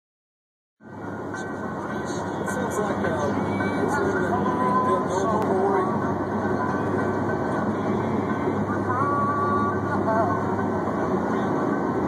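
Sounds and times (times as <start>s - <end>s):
car road noise at highway speed: 0.8s - 12.0s.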